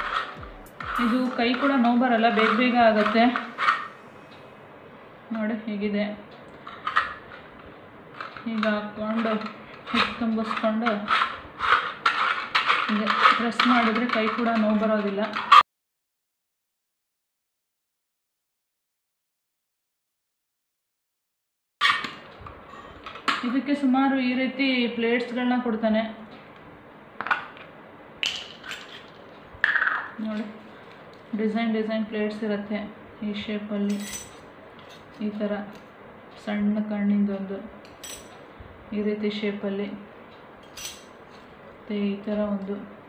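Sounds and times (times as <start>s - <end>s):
metal parts clinking: 33.8s - 35.1s, 40.6s - 41.1s.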